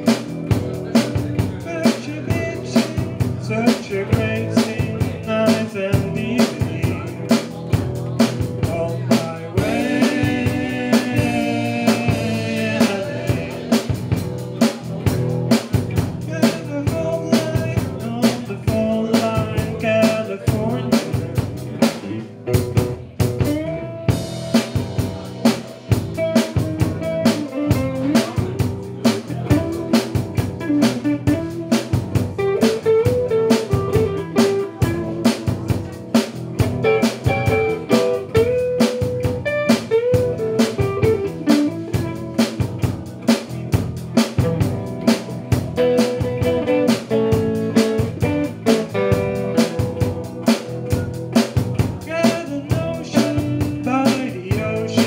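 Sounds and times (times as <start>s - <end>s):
blues rock band playing: 0.0s - 55.0s
drum beat: 0.0s - 55.0s
guitar melody: 0.0s - 55.0s.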